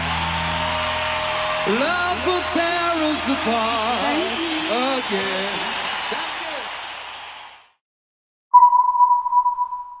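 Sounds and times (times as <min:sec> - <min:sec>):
high electronic beep: 0:08.5 - 0:10.0.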